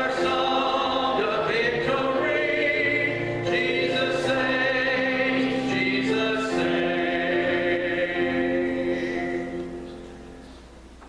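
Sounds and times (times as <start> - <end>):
grand piano: 0.0 - 11.0.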